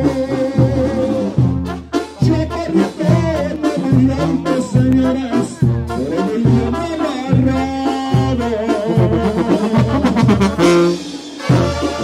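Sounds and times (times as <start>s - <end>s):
bouncing bass line: 0.0s - 12.0s
brass band playing: 0.0s - 12.0s.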